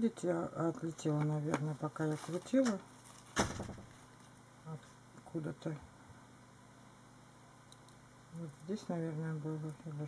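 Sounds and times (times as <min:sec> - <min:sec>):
paper rustle: 0:02.0 - 0:04.4.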